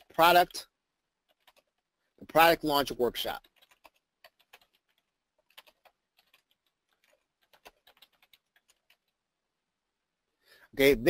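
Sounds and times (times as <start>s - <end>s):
computer keyboard typing: 1.2s - 1.8s, 3.2s - 9.2s.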